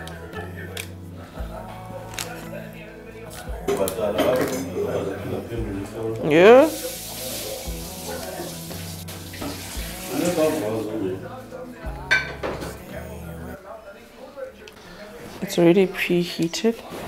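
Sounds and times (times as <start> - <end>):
background music with bass: 0.0 - 13.6
baking paper rustling: 6.6 - 11.1
glass dish clinking: 12.1 - 12.6.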